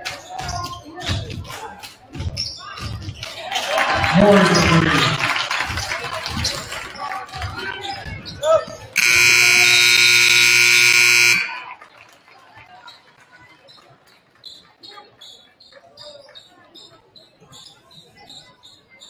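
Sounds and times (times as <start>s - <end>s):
faint crowd noise: 0.0s - 19.0s
scoreboard horn: 9.0s - 11.8s.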